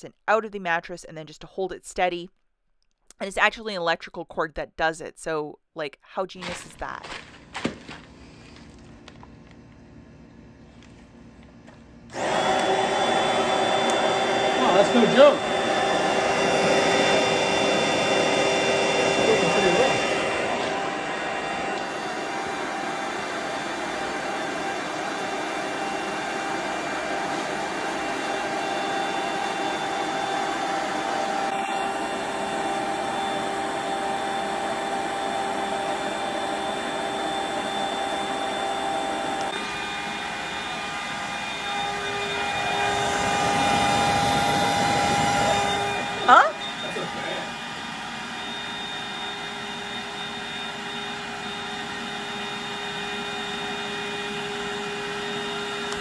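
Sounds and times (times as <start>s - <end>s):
electric air pump whirring: 12.1s - 56.0s.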